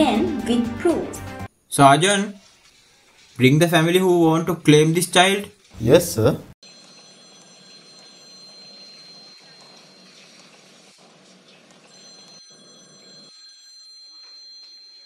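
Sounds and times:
high-pitched ringing tone: 6.6 - 11.0, 11.9 - 15.0.

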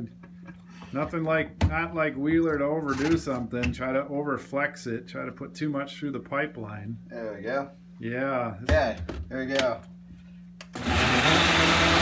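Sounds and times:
blender motor whirring: 10.7 - 12.0.

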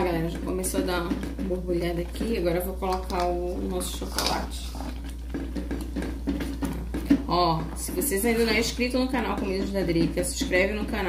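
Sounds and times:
spatula scraping saucepan: 0.0 - 11.0.

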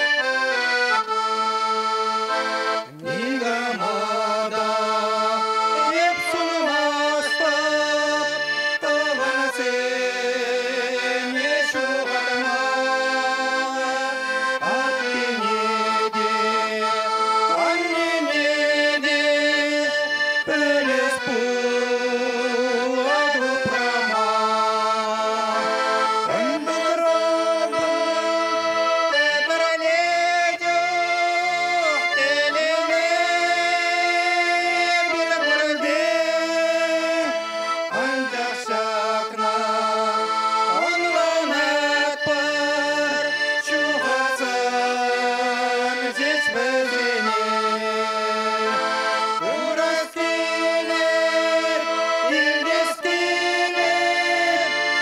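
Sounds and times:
button accordion playing chords: 0.0 - 55.0
man singing into microphone: 2.8 - 55.0.

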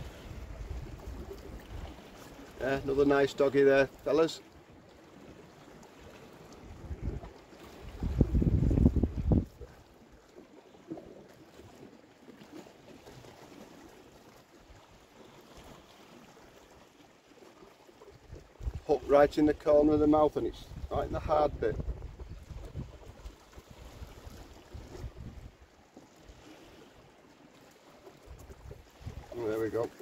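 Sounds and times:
sea washing against rocks: 6.1 - 9.8, 18.3 - 25.6, 28.2 - 30.0
wind gusting on microphone: 6.7 - 9.8, 20.4 - 25.6, 28.3 - 29.5.

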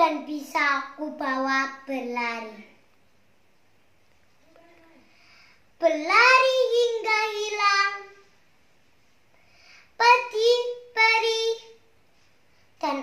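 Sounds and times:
girl reciting sing-song poetry: 0.0 - 2.8, 4.5 - 8.4, 9.6 - 12.0, 12.6 - 13.0.

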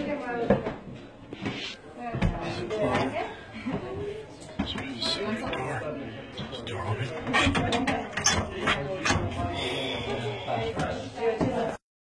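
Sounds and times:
people talking indistinctly: 0.0 - 11.8.

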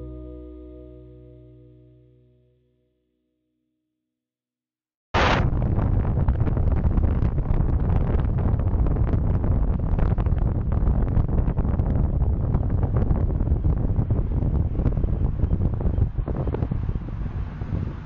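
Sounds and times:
wind buffeting microphone: 5.4 - 18.0.

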